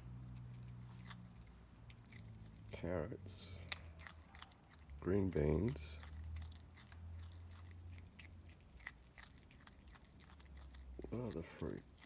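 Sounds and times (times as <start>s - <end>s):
animal chewing carrot crunches: 0.0s - 12.0s
low steady hum: 0.0s - 12.0s.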